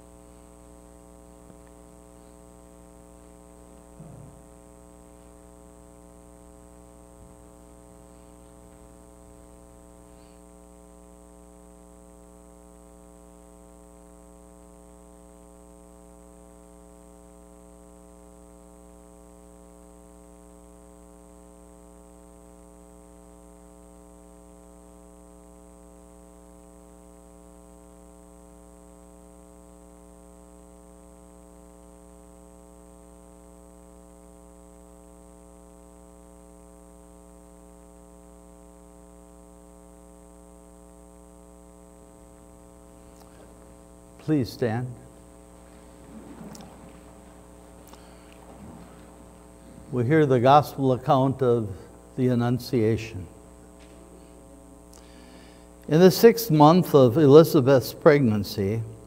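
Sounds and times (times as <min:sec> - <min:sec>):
mains hum: 0:00.0 - 0:59.0.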